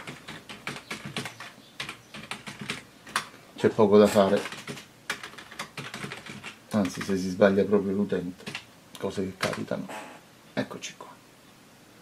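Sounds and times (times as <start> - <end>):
computer keyboard typing: 0.0 - 3.3, 4.2 - 7.2, 8.4 - 8.7, 9.4 - 9.7.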